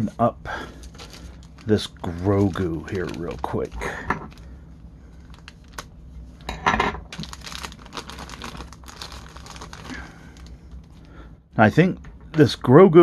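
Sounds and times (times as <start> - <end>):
plastic bag crinkling: 0.7 - 4.5, 5.2 - 5.9, 7.1 - 11.1.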